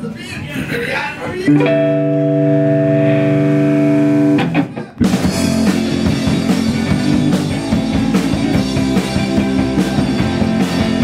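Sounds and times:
sustained electric guitar chord: 1.5 - 4.5.

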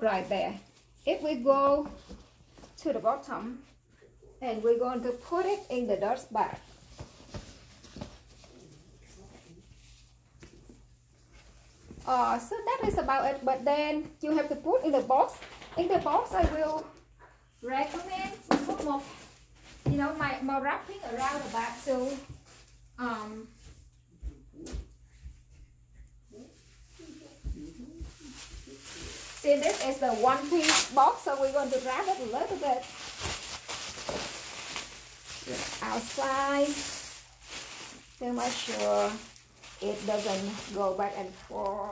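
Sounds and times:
fabric bag rustling: 17.6 - 23.6, 27.0 - 41.9.

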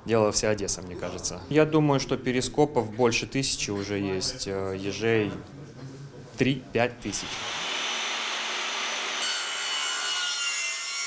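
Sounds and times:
mitre saw cutting: 7.2 - 11.0.

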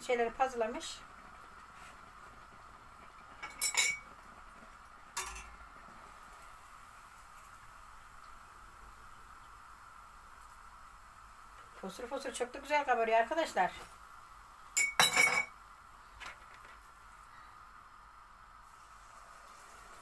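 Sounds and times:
dough frying in hot oil: 0.0 - 20.0
metal utensil clink on pot: 3.4 - 4.0, 5.2 - 5.5, 14.8 - 15.5.

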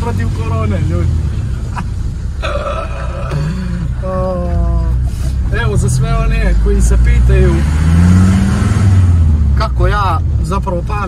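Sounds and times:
car engine running: 0.0 - 11.0
man laughing: 1.5 - 4.8.

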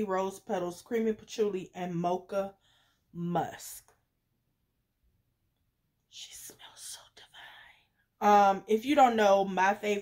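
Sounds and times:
woman whispering: 6.1 - 8.1.

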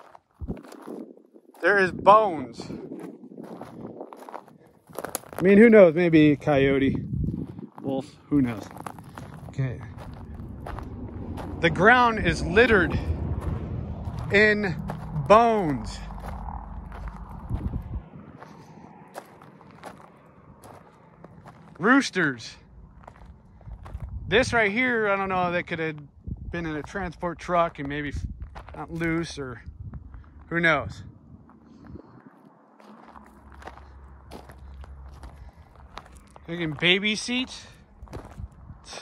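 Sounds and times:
footsteps on gravel: 0.0 - 24.3, 27.6 - 30.5, 31.5 - 39.0
low rumble: 6.0 - 38.9.

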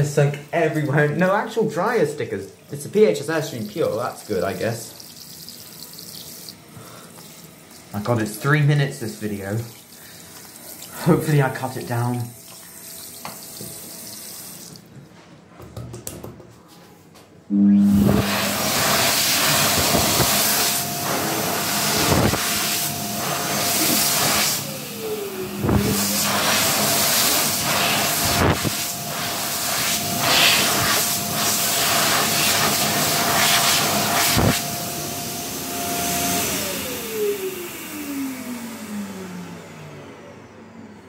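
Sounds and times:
hand dryer running: 0.0 - 15.0, 17.5 - 40.7.

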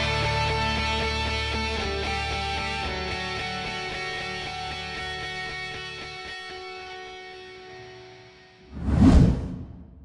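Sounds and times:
whoosh sound effect: 8.7 - 10.0.

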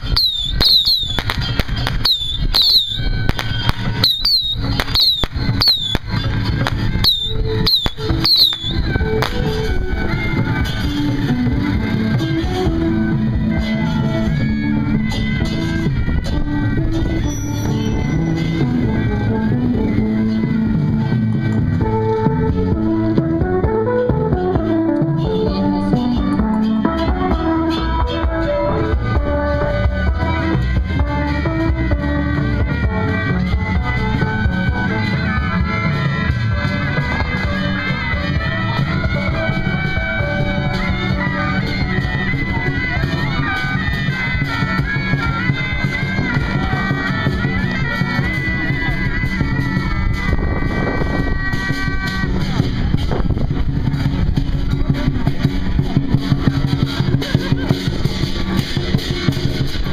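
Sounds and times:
firecrackers crackling: 0.0 - 12.8
melodic music: 0.0 - 43.6.

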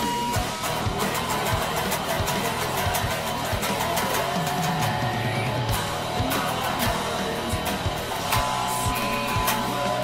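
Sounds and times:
electric guitar riff: 0.0 - 10.0
steady drum beat: 0.0 - 10.0.

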